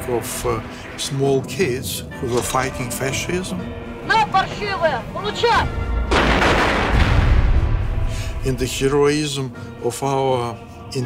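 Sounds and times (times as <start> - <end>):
large explosion with rumble: 6.0 - 8.4.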